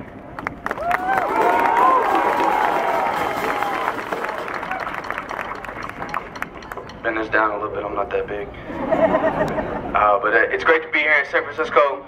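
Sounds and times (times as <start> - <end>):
crowd clapping: 0.3 - 7.0
crowd murmur: 8.0 - 10.0.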